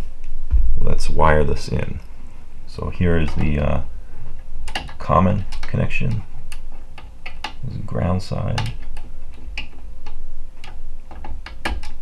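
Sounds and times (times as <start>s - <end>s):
low handling bumps: 0.0s - 12.0s.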